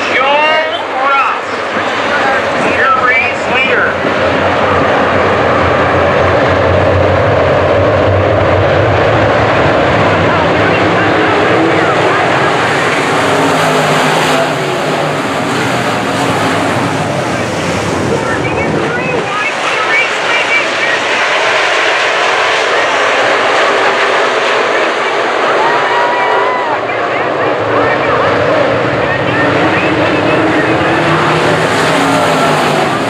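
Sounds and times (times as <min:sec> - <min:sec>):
race car engines droning: 0:00.0 - 0:33.0.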